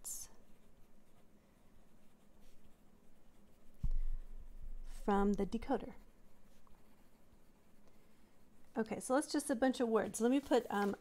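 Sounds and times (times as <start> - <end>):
pen scratching on paper: 0.2 - 9.3
low thump: 3.8 - 4.3.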